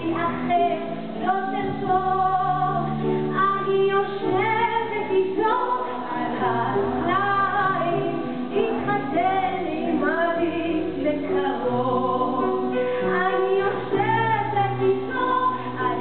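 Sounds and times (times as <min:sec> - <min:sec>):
woman singing folk song: 0:00.0 - 0:16.0.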